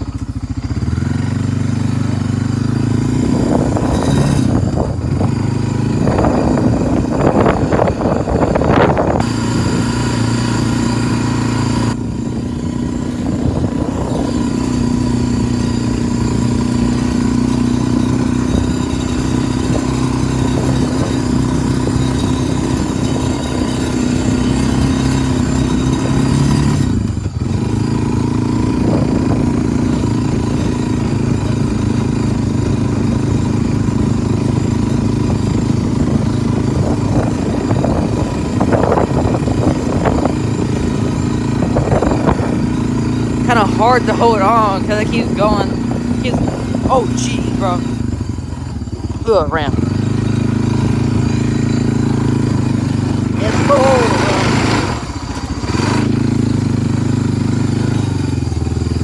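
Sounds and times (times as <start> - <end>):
atv engine running: 0.0 - 59.0.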